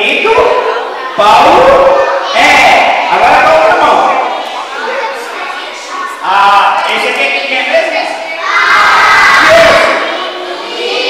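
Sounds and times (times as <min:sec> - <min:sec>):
young children shouting together: 0:00.4 - 0:03.1, 0:08.2 - 0:11.0.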